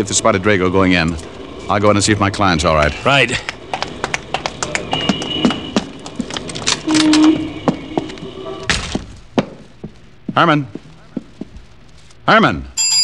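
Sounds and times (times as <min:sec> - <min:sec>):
quick footsteps on hard floor: 0:03.4 - 0:12.0.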